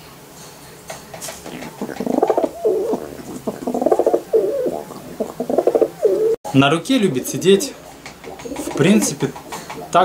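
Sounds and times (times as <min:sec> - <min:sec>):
pigeon cooing: 0:01.2 - 0:06.4, 0:07.2 - 0:10.0.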